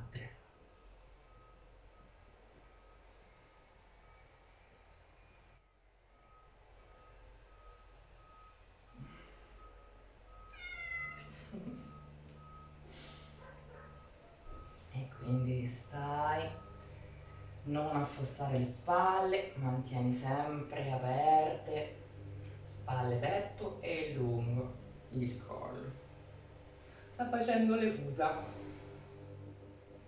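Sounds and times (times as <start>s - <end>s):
cat meowing: 10.4s - 11.4s.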